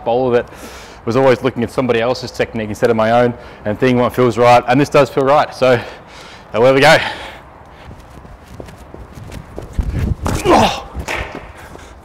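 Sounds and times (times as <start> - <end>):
running footsteps on turf: 7.7 - 12.0.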